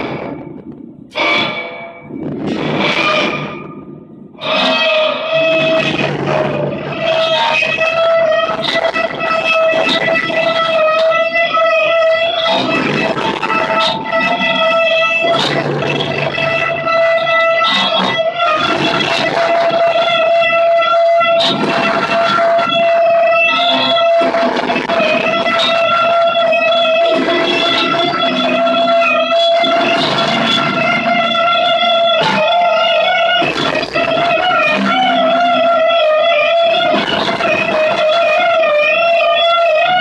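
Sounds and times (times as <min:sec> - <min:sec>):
distorted electronic noise: 0:00.0 - 0:40.0
droning tone: 0:00.0 - 0:40.0
rough noise layer: 0:00.0 - 0:40.0.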